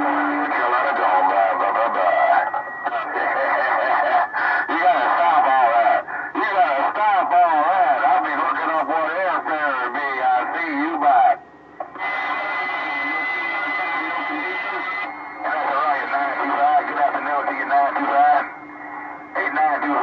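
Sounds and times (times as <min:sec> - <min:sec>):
voices over radio: 0:00.0 - 0:20.0
steady high whistle: 0:14.3 - 0:20.0.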